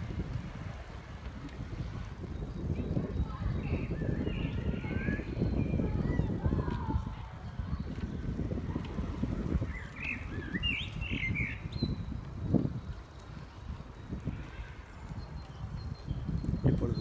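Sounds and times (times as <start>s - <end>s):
songbird chirping: 2.2s - 17.0s.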